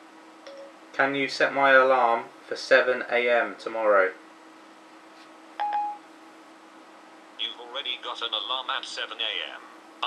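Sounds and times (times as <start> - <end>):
faint steady hum: 0.0 - 10.0
phone electronic chime: 5.6 - 6.0.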